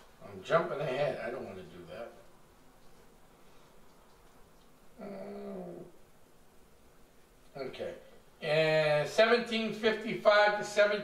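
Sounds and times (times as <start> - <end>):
man humming hmm: 5.0 - 6.0.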